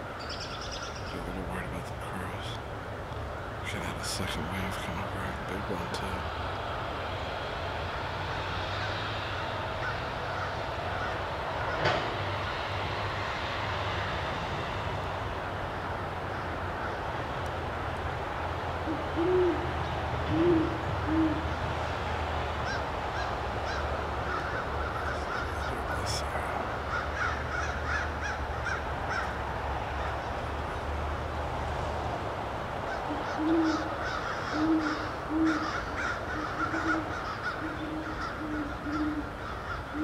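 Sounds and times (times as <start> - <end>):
low background rumble: 0.0 - 13.8
owl hooting: 18.8 - 21.6, 22.6 - 29.3, 32.9 - 40.0.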